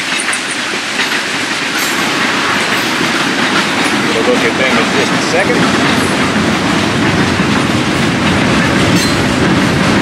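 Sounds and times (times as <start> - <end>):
freight train rumbling past: 0.0 - 10.0
wheels clicking over rail joints: 0.0 - 10.0.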